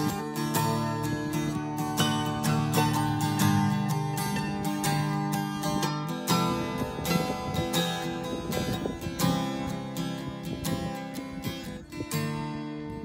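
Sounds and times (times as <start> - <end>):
acoustic guitar strumming: 0.0 - 13.0.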